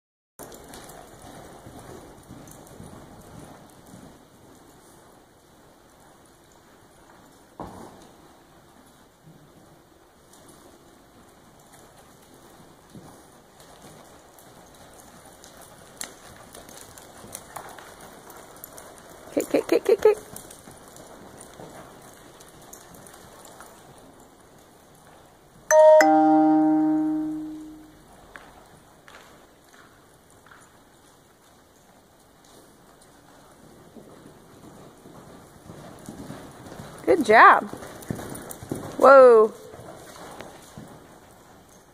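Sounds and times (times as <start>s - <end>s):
horse hoofbeats on soft dirt: 0.4s - 25.7s, 28.1s - 41.9s
two-note chime: 25.7s - 27.9s.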